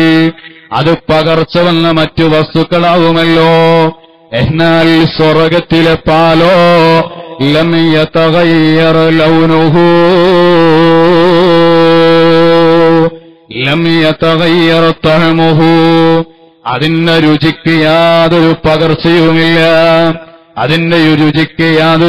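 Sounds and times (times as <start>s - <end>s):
man chanting: 0.0s - 22.0s.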